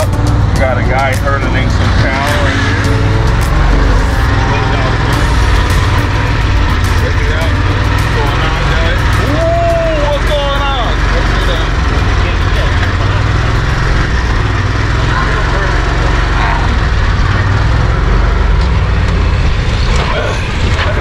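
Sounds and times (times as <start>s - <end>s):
road rumble: 0.0s - 21.0s
vehicle engine running: 0.0s - 21.0s.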